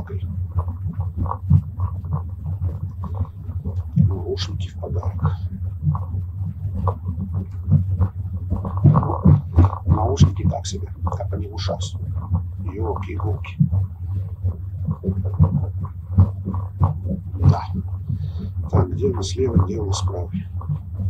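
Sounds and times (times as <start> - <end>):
train carriage rumble: 17.3 - 20.4.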